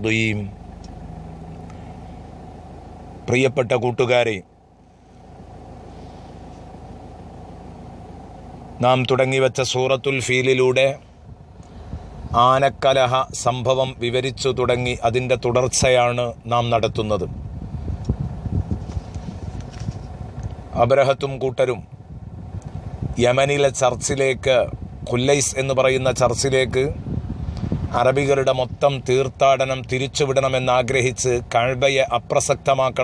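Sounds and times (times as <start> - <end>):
man speaking: 0.0 - 0.6, 3.3 - 4.4, 8.8 - 11.0
low background hum and rumble: 0.0 - 33.0.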